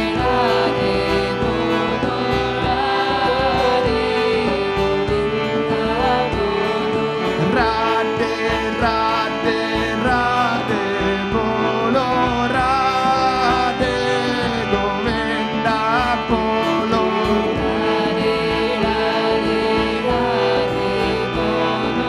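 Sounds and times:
sliding melody line: 0.0 - 22.0.

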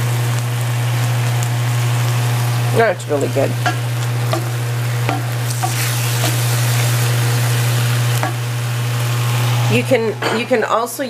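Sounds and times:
beef sizzling in a pan: 0.0 - 10.1.

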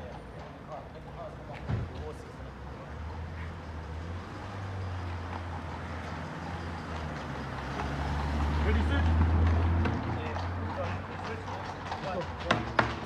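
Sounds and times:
car engine rumble passing: 0.0 - 13.0.

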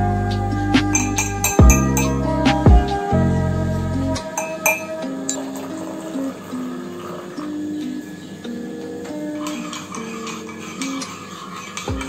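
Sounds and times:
background music melody: 0.0 - 12.0.

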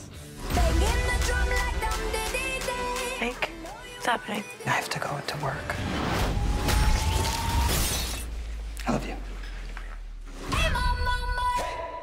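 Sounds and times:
shattering crash: 6.0 - 8.5.

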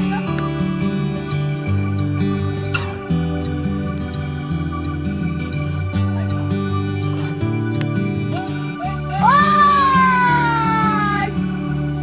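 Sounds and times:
soft background music: 0.0 - 12.0
child squealing with joy: 9.2 - 11.3.

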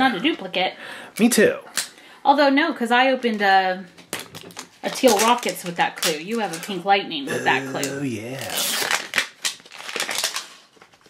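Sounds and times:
plastic wrap crackling: 8.5 - 10.9.

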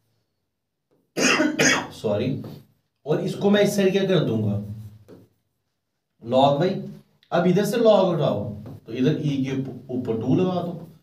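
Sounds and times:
man coughing: 1.2 - 2.0.

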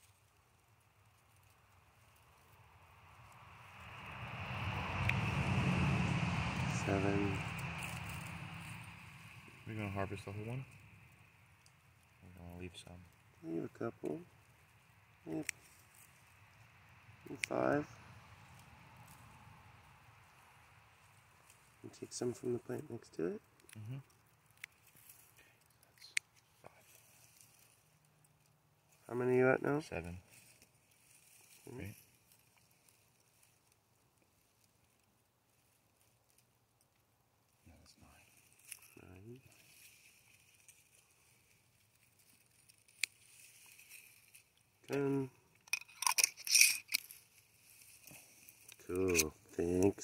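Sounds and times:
faint background hiss: 6.6 - 50.0
scissors snipping stems: 48.6 - 49.3.

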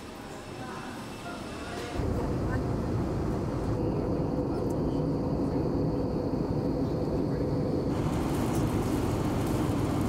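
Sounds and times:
jet engines and airflow rumble: 0.0 - 10.0.

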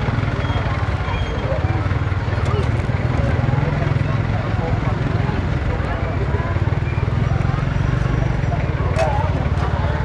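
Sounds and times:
children chattering: 0.0 - 10.0
motorcycle engine idling: 0.0 - 10.0.

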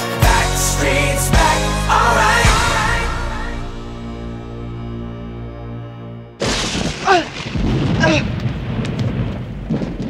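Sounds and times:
sharp thunder crackles: 6.4 - 10.0
steady rain: 6.4 - 10.0
thunder rumbling: 6.4 - 10.0.

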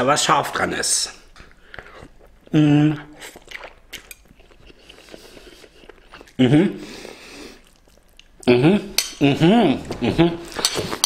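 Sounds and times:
person slurping and chewing: 1.5 - 8.5
wet mouth clicks: 3.1 - 6.4.

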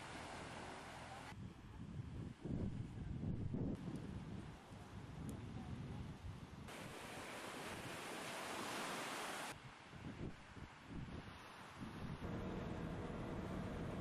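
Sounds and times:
waves breaking on sand: 0.0 - 1.3, 6.7 - 9.8
wind buffeting microphone: 1.3 - 8.1, 9.5 - 14.0.

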